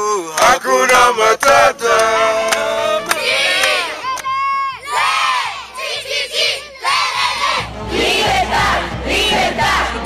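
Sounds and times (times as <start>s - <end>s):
children shouting and cheering: 2.8s - 7.7s.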